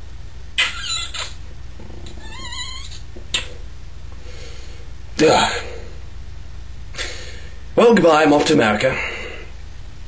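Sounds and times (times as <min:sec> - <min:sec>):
cat meowing: 0:02.0 - 0:03.0.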